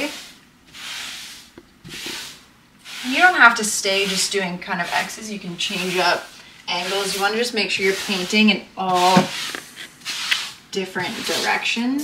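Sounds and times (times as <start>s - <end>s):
brush strokes on a wall: 0.0s - 12.0s.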